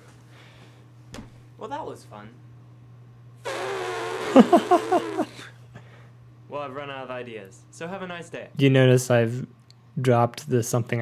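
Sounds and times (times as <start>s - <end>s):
person blowing a raspberry: 3.4s - 5.5s.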